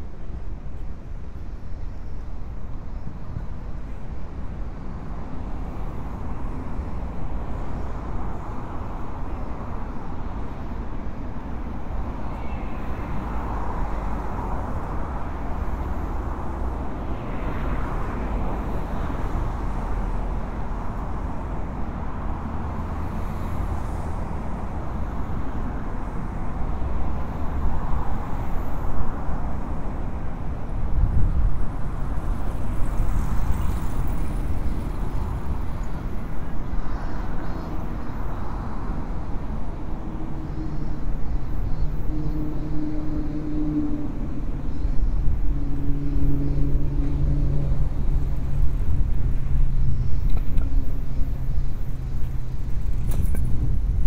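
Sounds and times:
road traffic rumble: 0.0 - 54.0.

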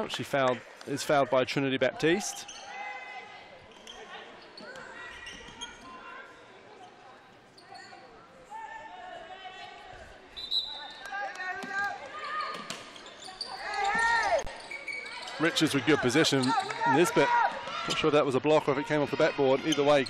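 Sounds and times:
echoing voices in a hall: 0.0 - 20.0.

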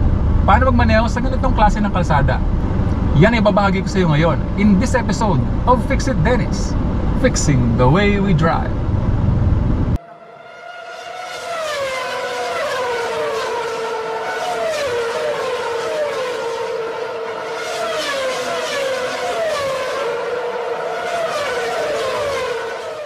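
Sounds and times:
motorcycle engine revving high: 2.3 - 23.0.

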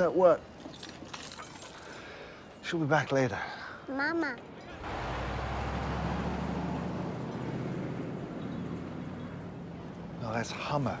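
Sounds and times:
suv engine humming by: 4.8 - 11.0.

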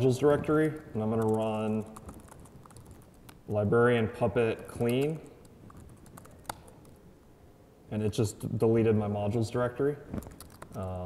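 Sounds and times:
typing on laptop keyboard: 0.7 - 3.4, 4.8 - 7.0, 10.2 - 10.9.

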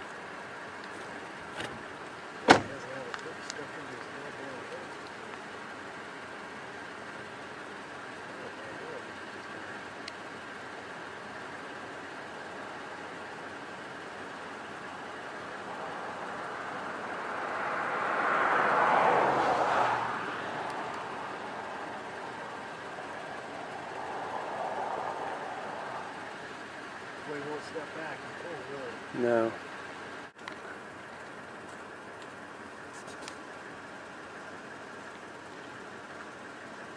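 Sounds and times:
steady background hiss: 0.0 - 36.9
vehicle passing by: 15.4 - 29.5.

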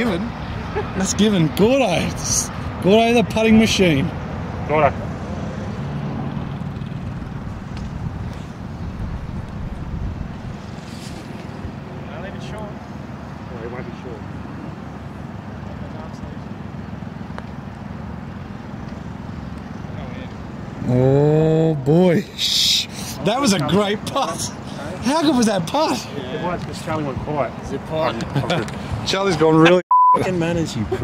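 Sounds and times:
low outdoor rumble: 0.0 - 29.6.

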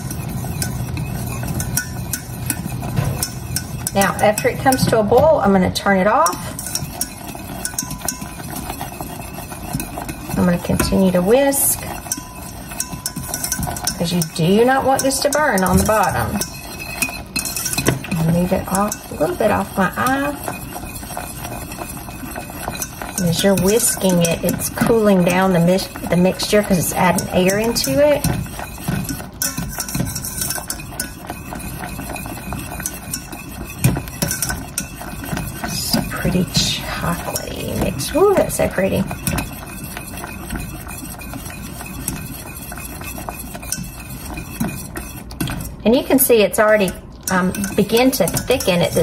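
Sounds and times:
whisk ticking against a pan: 0.0 - 49.0.

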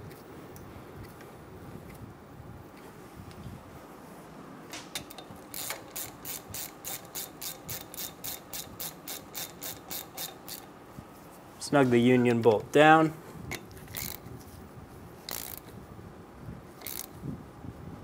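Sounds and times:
hand ratchet clicking: 5.0 - 10.7, 13.5 - 14.3, 15.3 - 15.7, 16.8 - 17.2
faint handling noise: 10.6 - 15.8.

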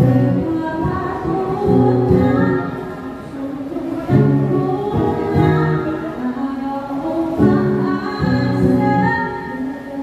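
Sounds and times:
acoustic guitar: 0.0 - 10.0
woman singing slow melody: 0.0 - 10.0.

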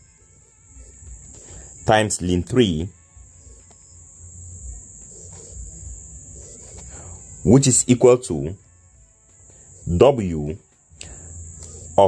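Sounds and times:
faint low noise: 0.0 - 12.0
man speaking: 1.8 - 3.0, 7.4 - 8.6, 9.8 - 10.6.

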